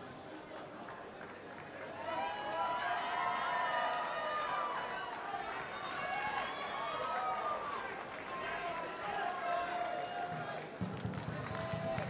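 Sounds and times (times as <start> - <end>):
crowd shouting and cheering: 2.0 - 12.0.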